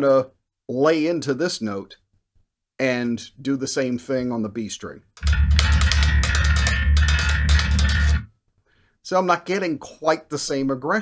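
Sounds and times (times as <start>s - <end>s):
electric bass plucked hard: 5.2s - 8.3s.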